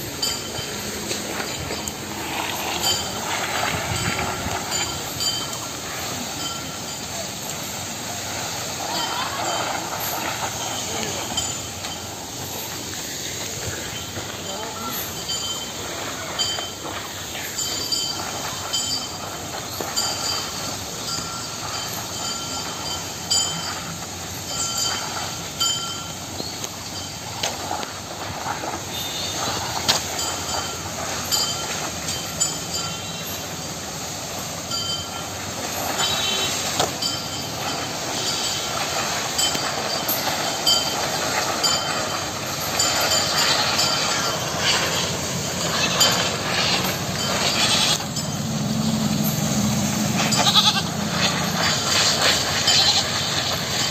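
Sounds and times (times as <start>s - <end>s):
tree trunks dragged along path: 0.0s - 53.9s.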